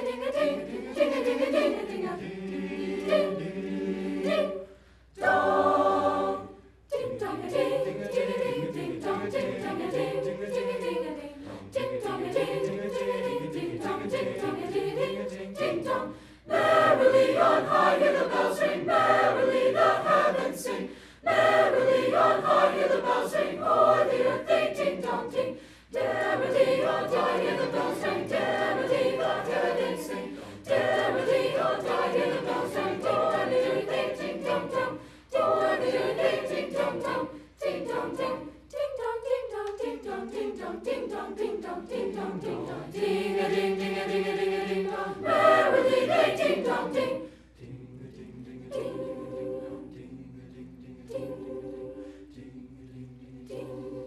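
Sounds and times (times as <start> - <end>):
children's choir singing: 0.0 - 54.0.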